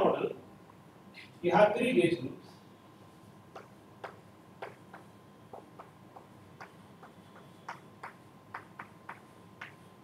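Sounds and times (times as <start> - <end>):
chalk tapping on a blackboard: 3.5 - 9.9.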